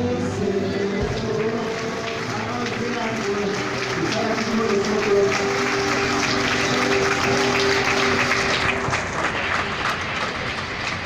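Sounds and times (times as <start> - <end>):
crowd applauding: 0.4 - 11.0.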